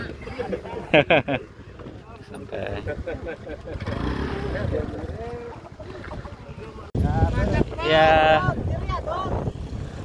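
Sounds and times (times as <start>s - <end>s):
small motorcycle engine running: 2.6s - 6.0s
men talking: 4.4s - 8.6s.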